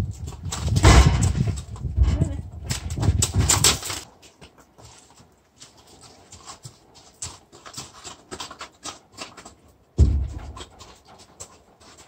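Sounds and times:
hooves and feet on gravel: 0:00.0 - 0:12.0
trailer door banging shut: 0:00.8 - 0:01.4.

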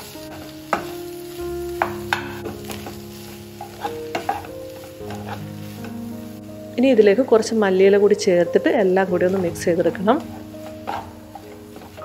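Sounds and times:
filling frying in pan: 0:00.0 - 0:12.0
wooden spatula scraping pan: 0:02.4 - 0:05.9, 0:09.1 - 0:12.0.

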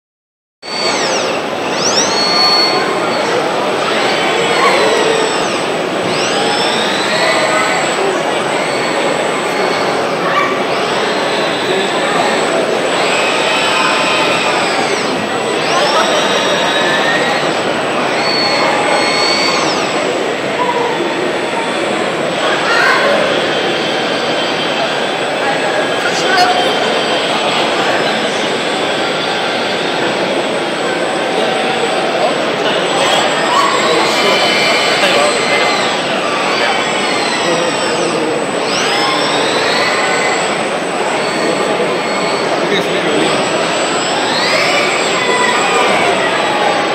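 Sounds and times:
crowd hubbub in a hall: 0:00.6 - 0:46.9
robot arm servos whining: 0:00.6 - 0:46.9.

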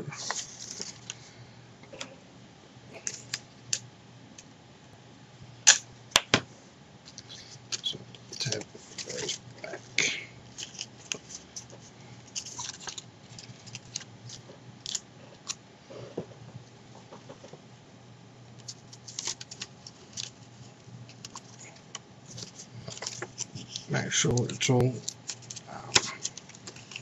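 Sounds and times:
paper crinkling and rustling: 0:00.1 - 0:01.2, 0:07.1 - 0:09.5, 0:10.5 - 0:15.6, 0:18.6 - 0:27.0.

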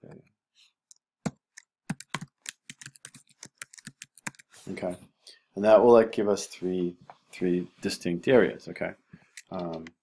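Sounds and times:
typing on computer keyboard: 0:01.9 - 0:04.5.

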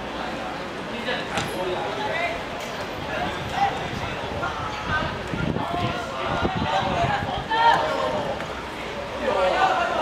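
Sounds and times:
players shouting: 0:03.1 - 0:10.0.

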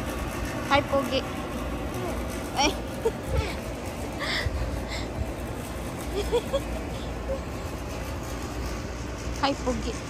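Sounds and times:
distant voices: 0:00.0 - 0:10.0
steady low rumble: 0:00.0 - 0:10.0.

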